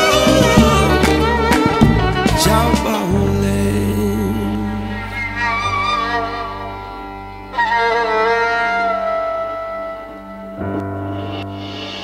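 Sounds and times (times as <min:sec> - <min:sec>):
violin melody: 0:00.0 - 0:11.2
low accompaniment: 0:00.0 - 0:12.0.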